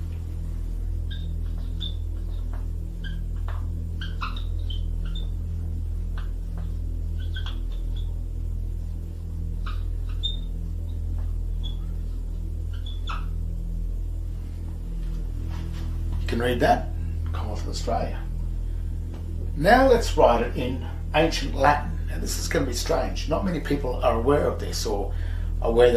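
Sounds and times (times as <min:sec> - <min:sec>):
low electrical hum: 0:00.0 - 0:25.9.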